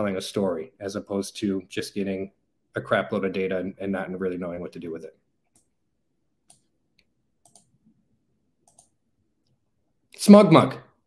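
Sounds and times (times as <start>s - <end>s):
faint mouse clicks: 5.4s - 5.8s, 6.4s - 7.9s, 8.6s - 9.6s.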